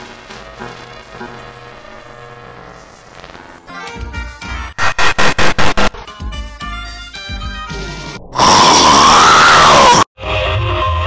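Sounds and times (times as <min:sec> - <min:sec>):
loud distorted scream: 0:04.8 - 0:05.9, 0:08.3 - 0:10.1.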